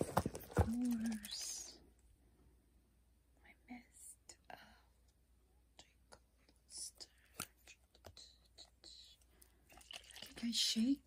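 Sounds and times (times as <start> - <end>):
faint whispering: 0.7 - 1.9, 3.4 - 5.0, 5.7 - 9.3.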